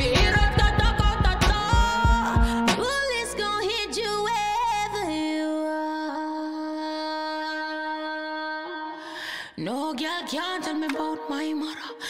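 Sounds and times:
bass beat: 0:00.0 - 0:03.4.

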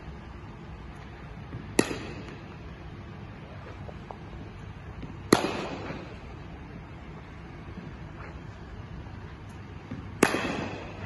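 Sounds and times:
cricket bat striking ball: 0:01.5 - 0:02.5, 0:05.0 - 0:06.2, 0:09.9 - 0:11.0.

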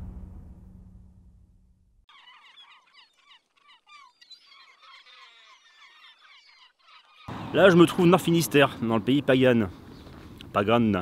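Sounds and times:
birds chirping faintly: 0:02.1 - 0:11.0.

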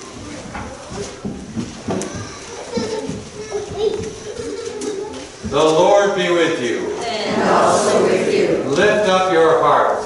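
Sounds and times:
children chattering and calling out: 0:00.0 - 0:05.5, 0:06.8 - 0:08.8.

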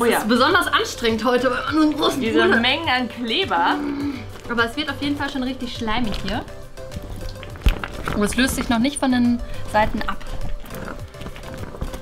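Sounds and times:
background music: 0:00.0 - 0:12.0
slime squelching and clicking: 0:06.1 - 0:08.9.

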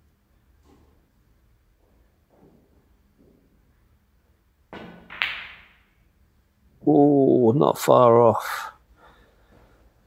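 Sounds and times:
cue tip striking cue ball: 0:04.8 - 0:05.9
snooker balls clicking: 0:04.8 - 0:06.0.

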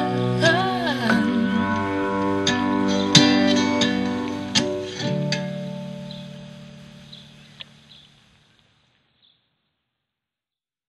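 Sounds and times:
acoustic guitar notes and chord: 0:00.0 - 0:08.0.

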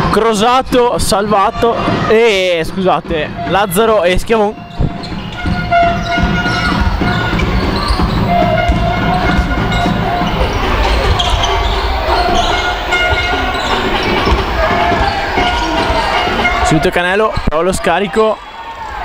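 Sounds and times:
crowd shouting: 0:00.0 - 0:19.0
players shouting: 0:00.0 - 0:19.0
basketball dribbling on hardwood: 0:04.7 - 0:11.4.

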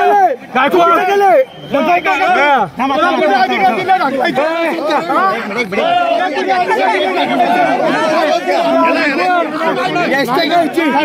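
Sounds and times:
crowd of men talking: 0:00.0 - 0:11.0.

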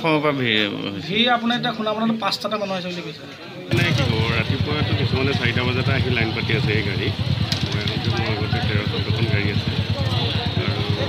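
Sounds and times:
men's voices: 0:03.6 - 0:11.0
motorcycle engines running: 0:03.7 - 0:11.0.

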